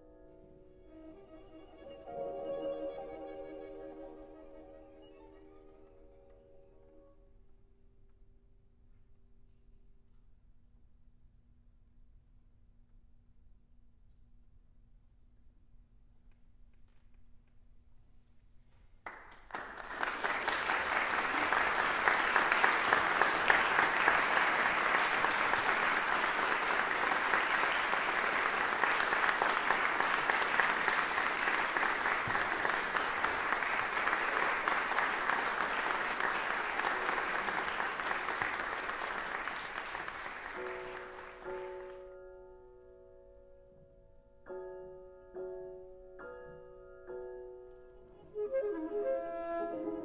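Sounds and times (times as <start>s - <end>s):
audience applauding: 19.0s - 42.0s.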